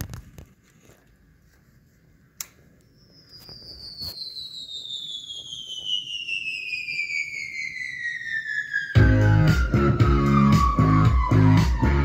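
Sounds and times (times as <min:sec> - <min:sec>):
falling whistle tone: 0:02.9 - 0:12.0.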